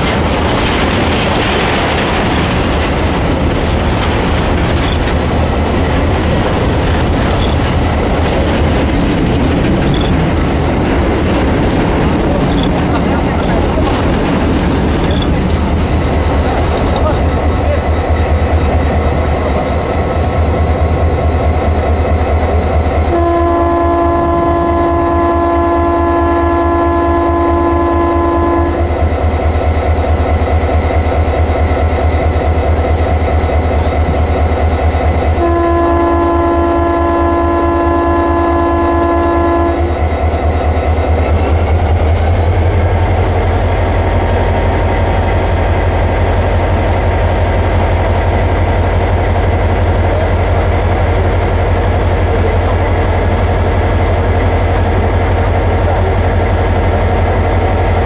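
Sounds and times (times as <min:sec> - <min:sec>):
multi-tone air horn blasts: 0:23.1 - 0:28.8, 0:35.4 - 0:39.9
locomotive engine idling: 0:42.6 - 0:58.0.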